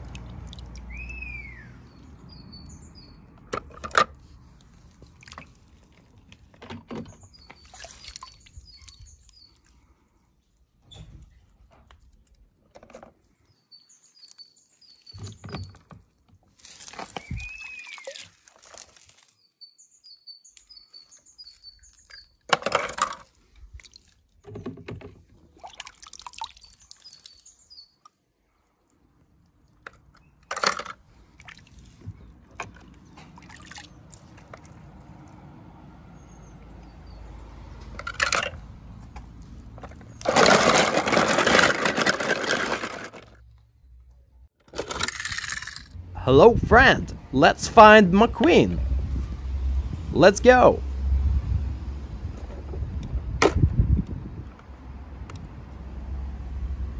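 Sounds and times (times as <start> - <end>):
water splashing in a plastic tub: 0.0 - 2.3, 3.2 - 9.9, 15.2 - 19.4, 21.9 - 43.4
small birds chirping: 0.7 - 3.4, 7.0 - 10.3, 13.3 - 16.0, 16.6 - 18.4, 19.1 - 22.5, 26.4 - 28.8.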